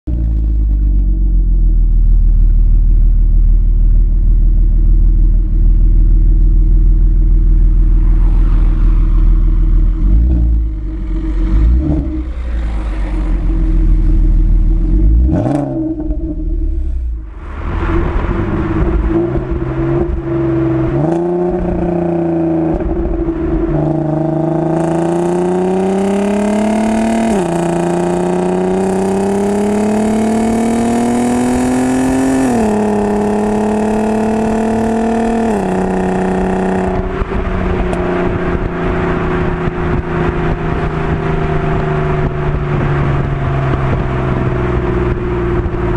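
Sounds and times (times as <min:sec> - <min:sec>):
car engine revving and accelerating: 0:07.3 - 0:45.9.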